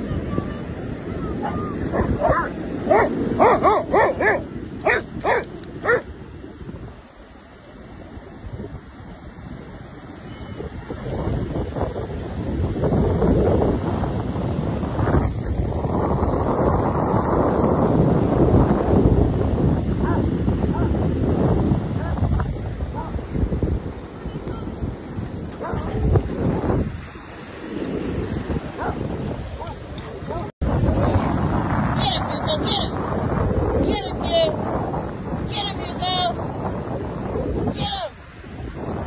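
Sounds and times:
wind on microphone: 0.0s - 39.0s
dogs barking: 1.4s - 6.1s, 20.0s - 21.0s, 22.9s - 23.2s, 25.5s - 26.0s, 28.7s - 30.5s.

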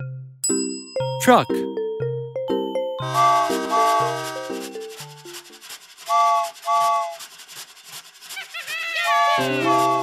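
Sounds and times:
bright children's music: 0.0s - 5.7s, 9.0s - 10.0s
toy train whistle toots: 3.0s - 5.2s, 6.0s - 7.3s, 8.3s - 10.0s
scratchy toy train chugging: 3.0s - 10.0s.

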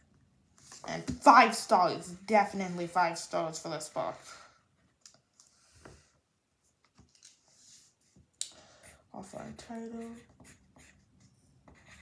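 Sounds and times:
pencil scratching on paper: 8.8s - 12.0s.

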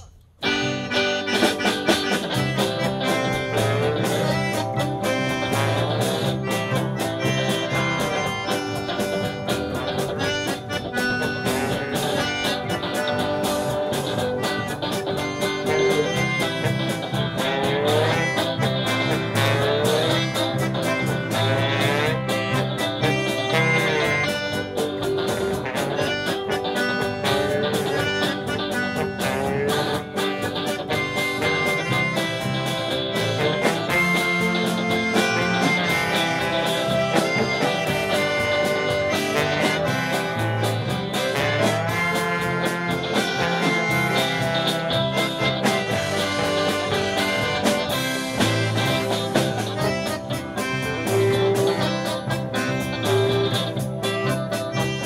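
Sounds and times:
polka band playing: 0.0s - 55.0s.

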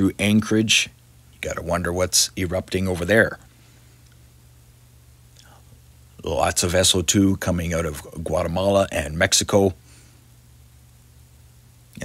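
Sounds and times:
faint electrical hum and hiss: 0.0s - 12.0s
soft breath: 9.8s - 10.4s.

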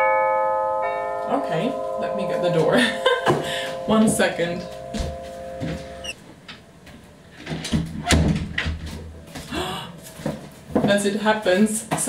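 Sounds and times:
footsteps: 1.7s - 6.2s.

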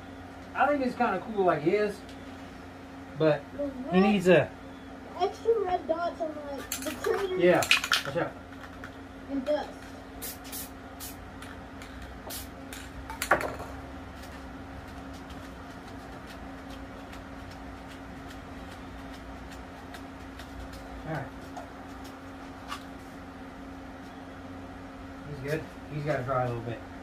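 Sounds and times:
steady low hum: 0.0s - 27.0s.

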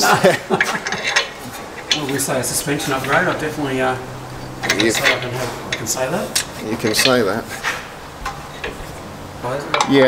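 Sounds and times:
low steady hum: 0.3s - 10.0s
metal clinks and taps: 0.6s - 2.3s, 4.1s - 9.1s.

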